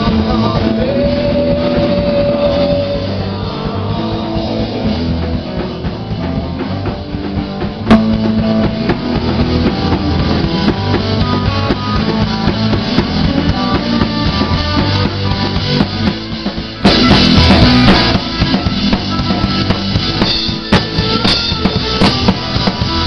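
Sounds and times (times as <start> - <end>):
rock band playing: 0.0 - 23.0.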